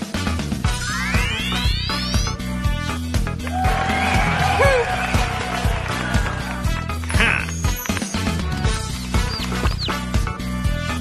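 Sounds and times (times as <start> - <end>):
cartoon music with bass beat: 0.0 - 11.0.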